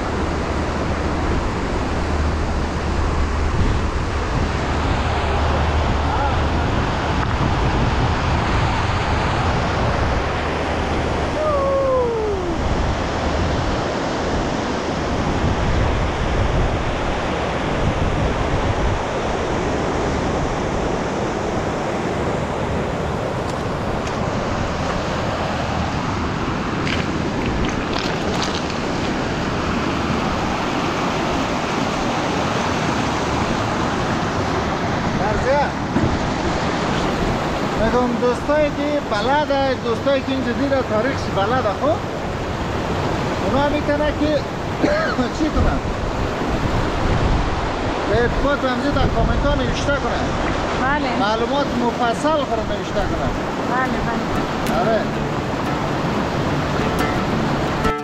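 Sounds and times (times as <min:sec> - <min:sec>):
river rushing over boulders: 0:00.0 - 0:58.0.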